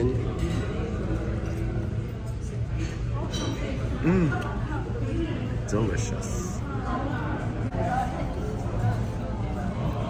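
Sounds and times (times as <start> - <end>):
indistinct background chatter: 0.0 - 10.0.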